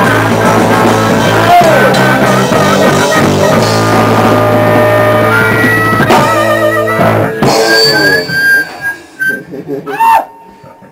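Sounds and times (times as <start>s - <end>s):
rock band full hits: 0.0s - 10.6s
wavering high held note: 5.2s - 9.5s.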